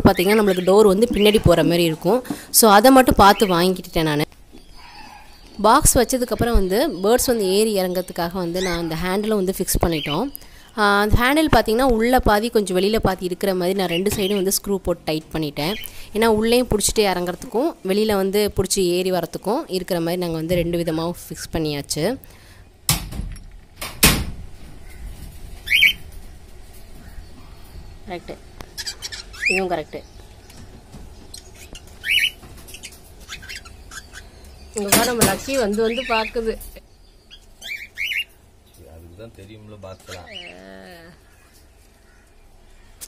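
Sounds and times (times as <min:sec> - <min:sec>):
cockatiel chirping: 0:31.4 - 0:34.3.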